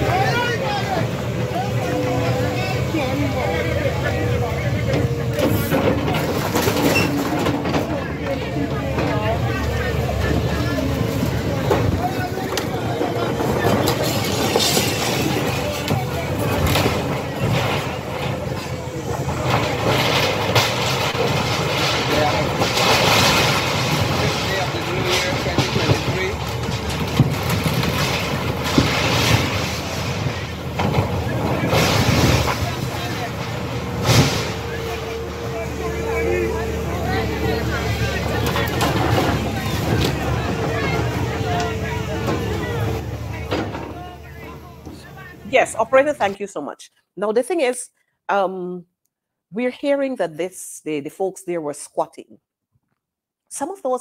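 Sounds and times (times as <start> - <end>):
timber and metal crashing: 0.0 - 46.4
excavator diesel engine running: 0.0 - 46.5
background voices: 0.0 - 47.7.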